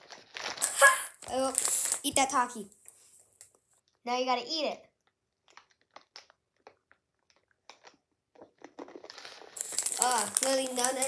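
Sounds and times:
chip crunching: 0.0 - 2.1, 5.4 - 11.0.

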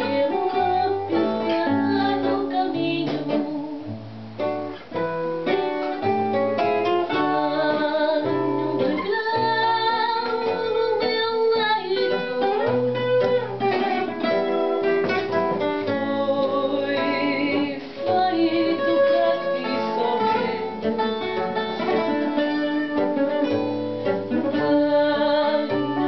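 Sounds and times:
woman singing: 0.0 - 4.0, 7.0 - 14.5, 15.6 - 26.0
plucked guitars: 0.0 - 26.0.

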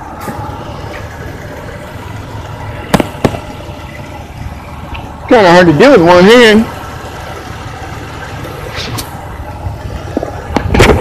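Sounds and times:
car engine running: 0.0 - 11.0
sudden sharp engine noise: 0.0 - 11.0.

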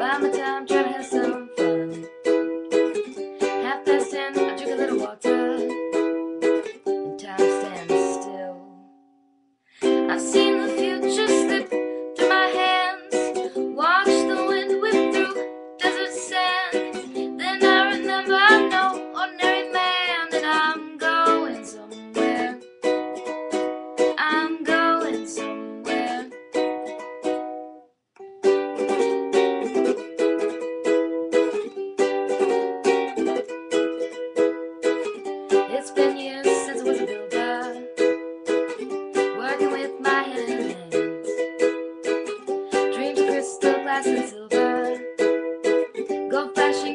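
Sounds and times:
ukulele playing chords: 0.0 - 46.9.

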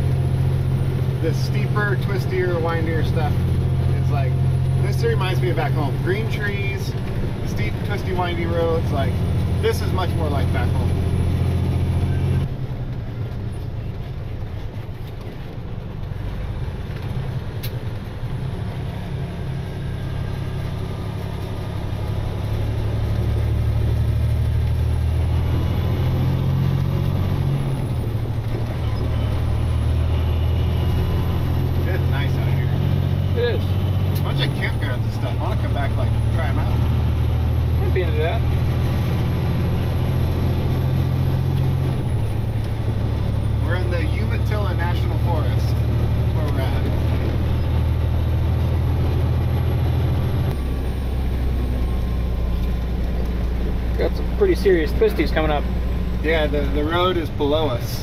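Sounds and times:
diesel truck engine climbing: 0.0 - 58.0.

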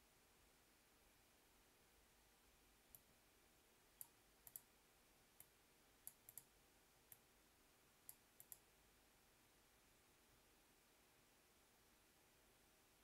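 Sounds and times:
faint sharp clicks: 4.0 - 4.7, 5.4 - 6.5, 8.0 - 8.7.

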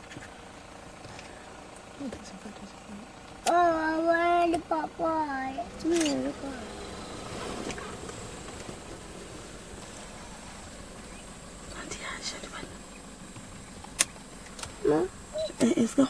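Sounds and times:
vehicle engine idling: 0.0 - 16.0
sharp click: 13.8 - 14.8.

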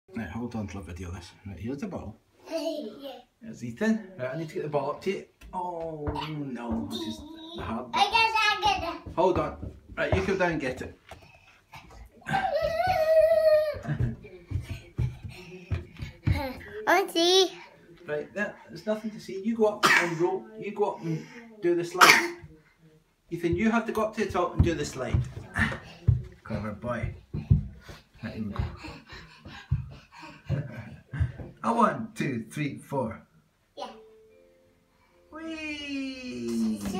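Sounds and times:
soft thumps on carpeted stairs: 5.4 - 11.3, 12.4 - 16.8, 23.4 - 31.7
soft low thumps: 23.4 - 31.6.

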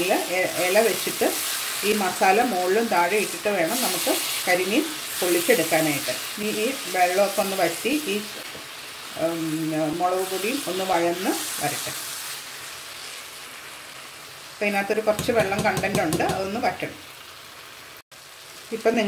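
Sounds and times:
woman talking: 0.0 - 8.3, 9.2 - 12.0, 14.6 - 17.0, 18.7 - 19.0
food sizzling in frying pan: 0.0 - 19.0.

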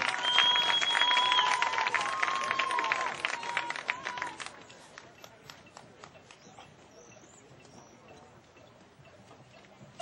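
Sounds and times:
faint marching percussion taps: 4.2 - 10.0.

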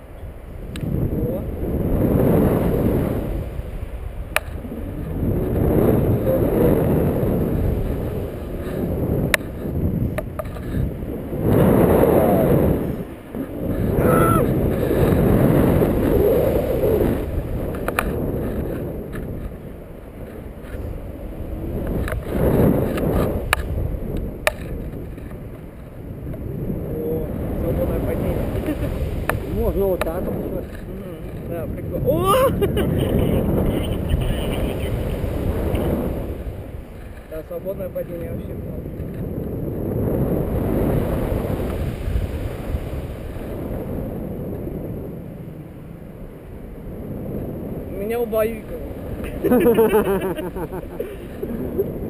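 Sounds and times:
wind buffeting microphone: 0.0 - 52.0.

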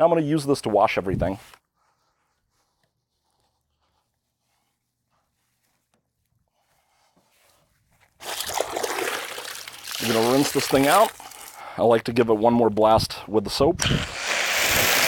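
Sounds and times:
water splashing and pouring: 8.2 - 11.6.

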